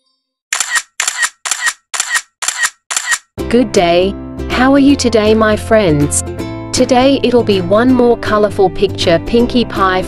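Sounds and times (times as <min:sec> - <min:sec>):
camera shutter clicks: 0:00.6 - 0:03.3.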